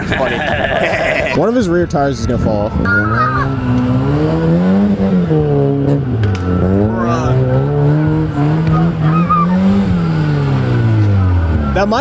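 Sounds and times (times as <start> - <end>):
car engine at high revs: 2.8 - 12.0.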